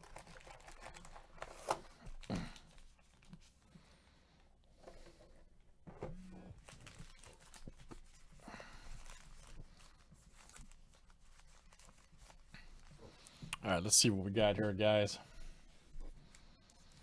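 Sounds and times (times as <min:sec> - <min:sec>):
foil wrappers crinkling and tearing: 0:00.0 - 0:03.5, 0:06.6 - 0:13.5
small rustles and clicks: 0:00.0 - 0:03.7, 0:06.6 - 0:13.6.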